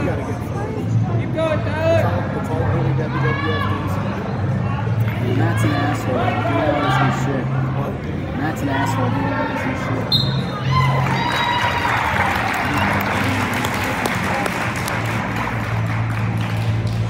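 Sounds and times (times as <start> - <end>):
crowd cheering and clapping: 10.7 - 17.0.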